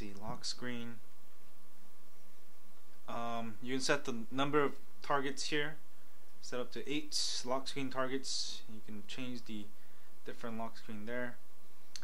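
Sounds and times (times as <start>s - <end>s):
faint background hiss: 0.0s - 12.0s.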